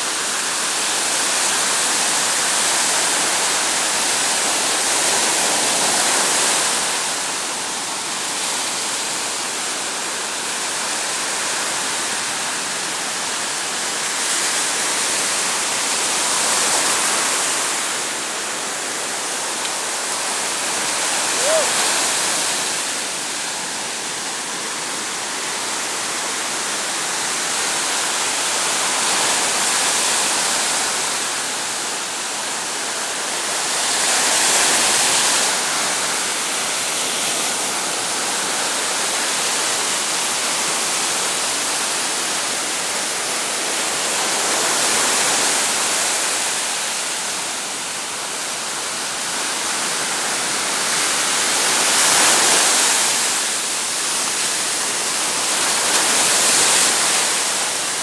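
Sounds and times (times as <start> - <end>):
ocean surf breaking on beach: 0.0 - 58.0.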